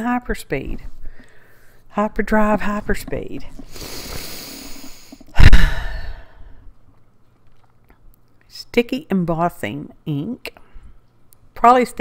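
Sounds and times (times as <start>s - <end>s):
woman breathing in: 1.0s - 1.9s, 3.7s - 6.7s.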